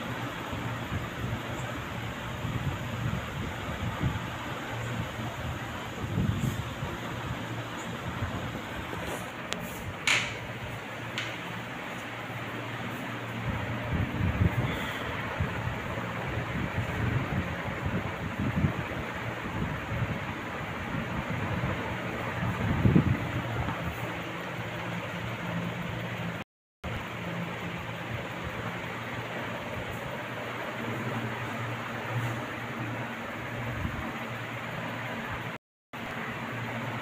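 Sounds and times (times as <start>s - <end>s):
low mechanical hum with hiss: 0.0s - 37.0s.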